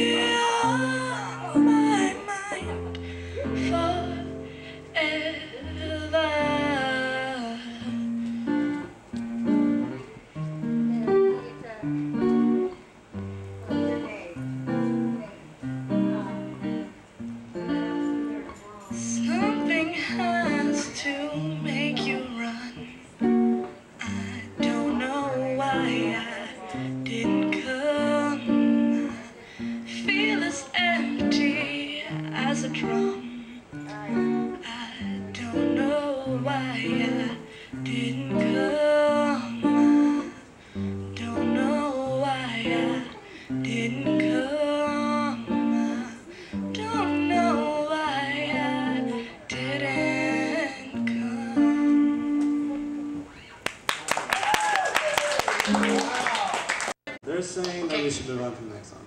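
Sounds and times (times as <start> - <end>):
woman singing: 0.0 - 17.0, 17.6 - 53.6
acoustic guitar picking chords: 0.0 - 53.6.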